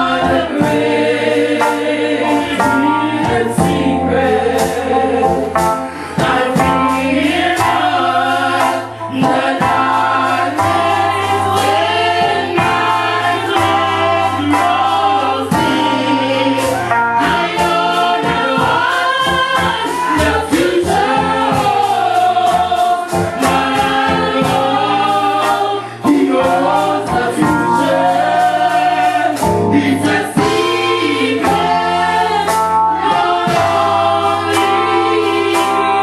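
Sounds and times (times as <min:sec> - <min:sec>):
accompaniment with steady beat: 0:00.0 - 0:36.0
gospel choir singing: 0:00.0 - 0:36.0.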